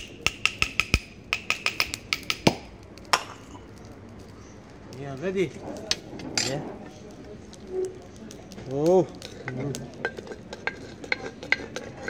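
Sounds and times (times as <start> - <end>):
wooden spoon scraping clay pot: 8.7 - 12.0.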